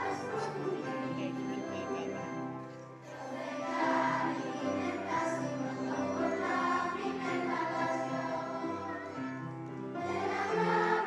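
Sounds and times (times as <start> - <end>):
children's choir singing: 0.0 - 11.0
piano accordion: 0.0 - 11.0.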